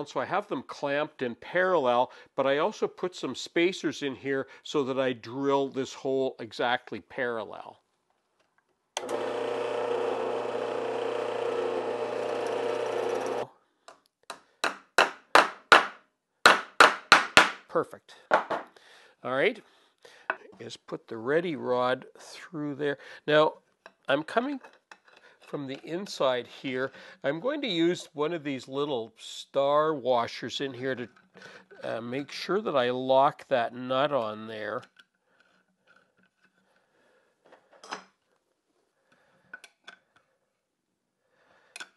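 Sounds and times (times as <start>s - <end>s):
drill press boring wood: 9.0s - 13.5s
hammer tapping on wood: 14.3s - 17.6s.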